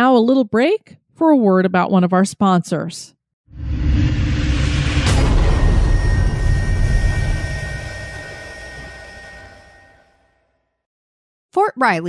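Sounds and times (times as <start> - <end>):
deep rumbling: 3.6 - 10.0
ringing tones: 5.1 - 10.4.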